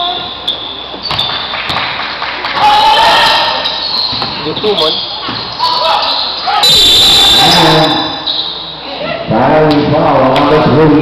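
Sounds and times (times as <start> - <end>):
gym background noise: 0.0 - 11.0
players calling out: 2.5 - 9.8.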